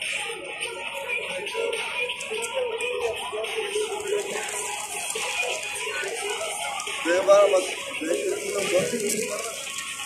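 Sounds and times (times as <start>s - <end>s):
people talking and calling out: 0.0s - 10.0s
quiet background music: 0.0s - 10.0s.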